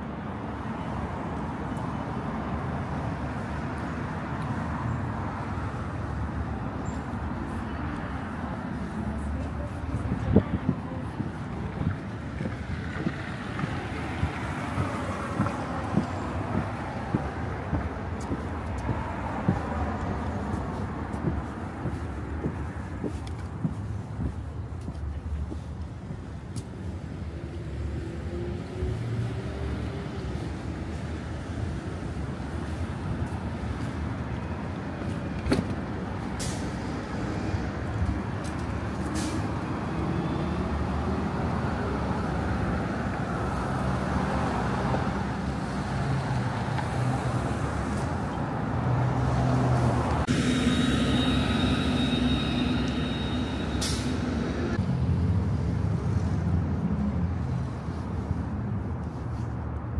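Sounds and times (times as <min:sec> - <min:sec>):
bus passing: 0:00.0 - 0:59.9
cars passing: 0:00.0 - 0:59.9.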